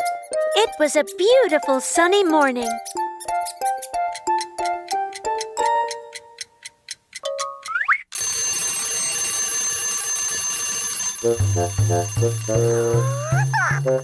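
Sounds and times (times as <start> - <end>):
light plucked music tune: 0.0 - 6.6, 7.2 - 8.0, 11.2 - 14.0
alarm clock bells ringing: 0.1 - 6.2, 7.2 - 14.0
bouncy bass tune: 11.2 - 14.0.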